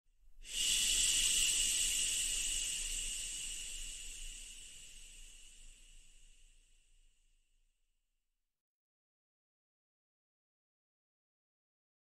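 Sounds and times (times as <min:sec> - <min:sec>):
high hiss: 0:00.4 - 0:06.9.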